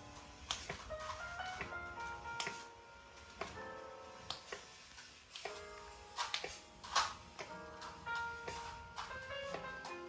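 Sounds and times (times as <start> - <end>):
tinkly background music: 0.0 - 5.1.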